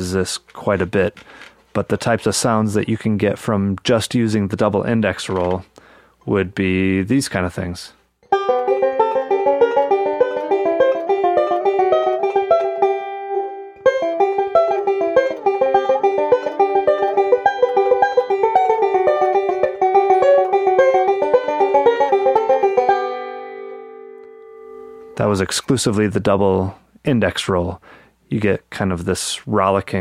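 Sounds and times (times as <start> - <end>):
banjo picking: 8.3 - 25.5.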